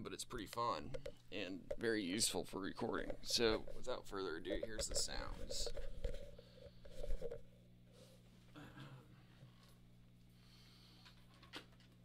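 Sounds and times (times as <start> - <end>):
guitar amp hum: 0.0 - 12.0.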